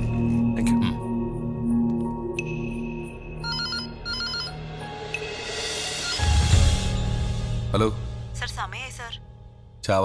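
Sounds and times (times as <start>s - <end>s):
soft background music: 0.0s - 10.0s
desk telephone ringing: 3.4s - 4.7s.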